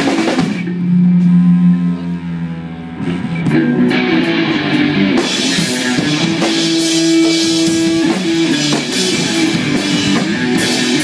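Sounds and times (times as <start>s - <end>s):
live rock band: 0.0s - 1.6s, 3.0s - 11.0s
held low electric guitar note: 0.2s - 8.5s.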